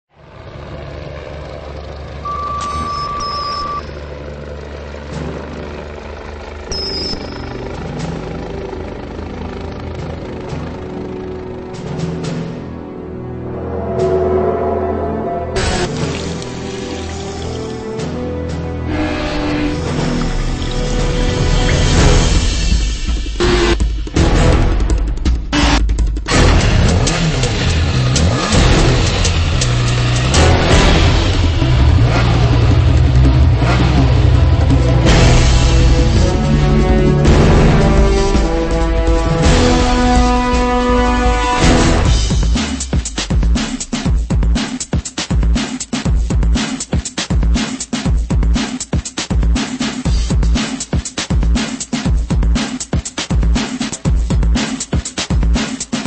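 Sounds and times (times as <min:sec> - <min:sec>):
motorcycle engine revving: 0:00.2 - 0:12.8, 0:18.8 - 0:44.8
heavy machinery rumble: 0:00.2 - 0:42.3
steady electronic beep: 0:02.2 - 0:04.0, 0:06.7 - 0:07.8.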